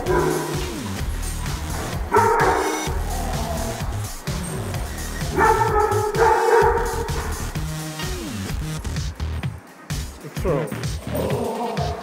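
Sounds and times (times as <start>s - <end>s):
dog barking: 0.0s - 0.8s, 1.9s - 3.7s, 5.3s - 7.5s
background music: 0.0s - 12.0s.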